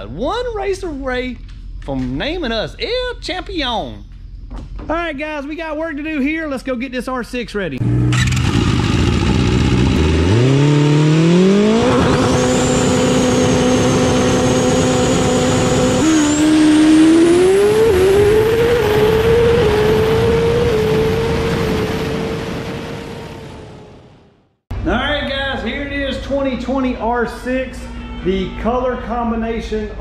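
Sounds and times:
vehicle engine revving: 7.8 - 24.4.

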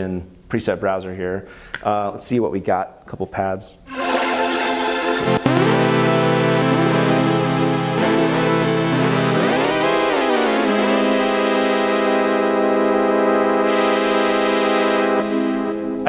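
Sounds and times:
synthesizer pad chord: 3.9 - 16.0.

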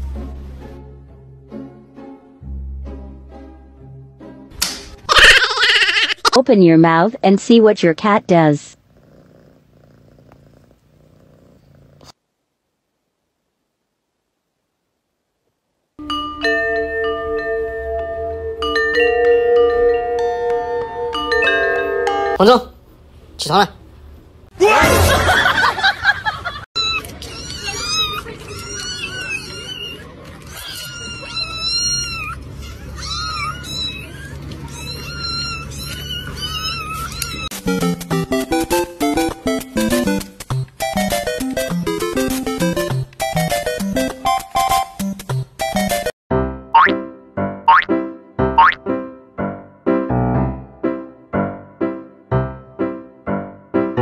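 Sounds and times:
kittens mewing: 5.0 - 6.4, 26.8 - 37.5
cat purring: 8.7 - 12.2
bouncy plucked music: 37.5 - 46.1, 46.7 - 49.0.

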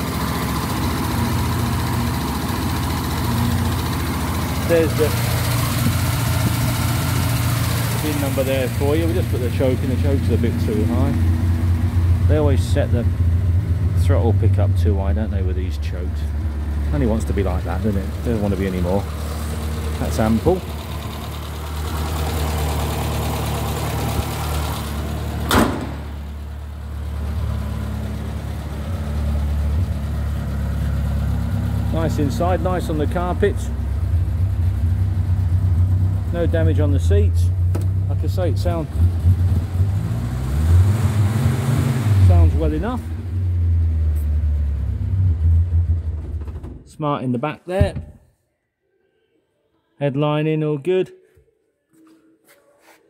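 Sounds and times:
car engine idling: 0.0 - 46.8
sharp knock: 25.5 - 26.0.

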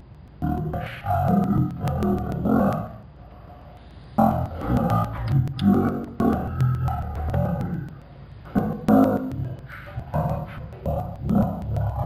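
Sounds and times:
man speaking distorted: 0.4 - 3.1, 4.2 - 12.0.

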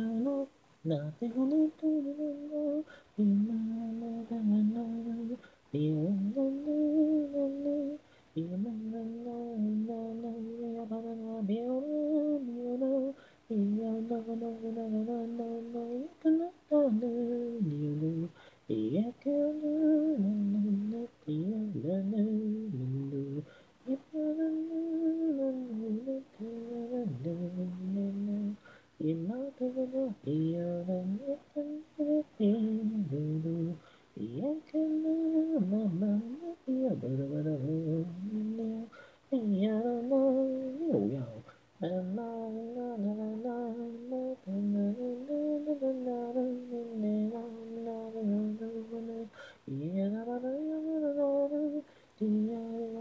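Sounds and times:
person humming: 0.0 - 53.0
person singing wordless melody: 0.0 - 53.0.

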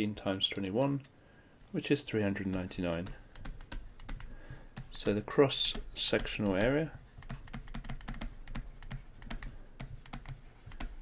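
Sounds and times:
stylus tapping on tablet: 2.4 - 11.0.

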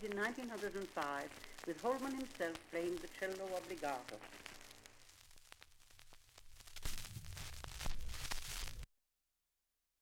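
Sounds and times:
record hiss and crackles: 0.0 - 8.9.

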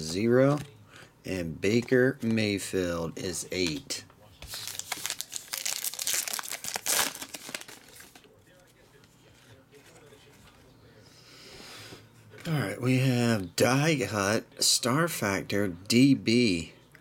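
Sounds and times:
cards rustling: 3.6 - 10.7
wrapper crinkling and tearing: 4.5 - 8.3.

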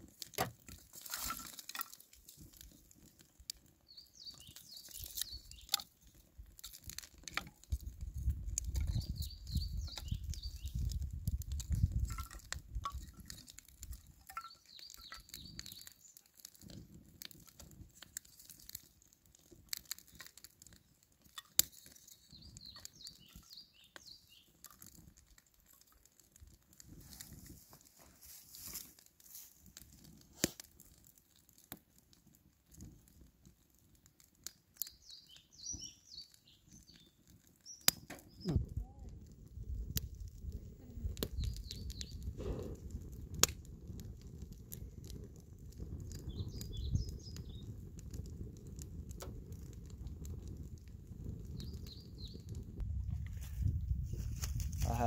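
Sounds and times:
fire crackling and popping: 0.0 - 55.0
birds chirping faintly: 3.8 - 5.8, 14.3 - 16.3, 20.8 - 24.6, 34.8 - 38.7.

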